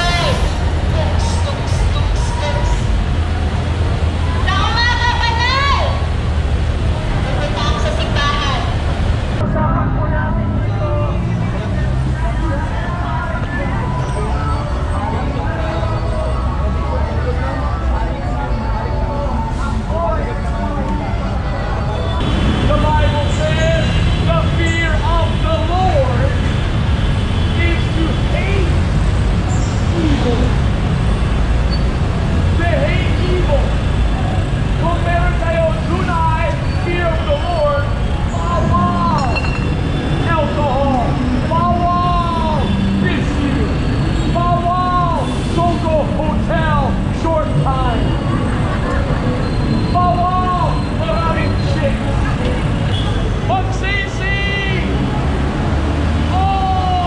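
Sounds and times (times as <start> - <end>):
heavy street traffic rumble: 0.0 - 57.0
man preaching loudly: 34.8 - 39.3, 40.2 - 43.7, 53.5 - 55.0, 56.3 - 57.0.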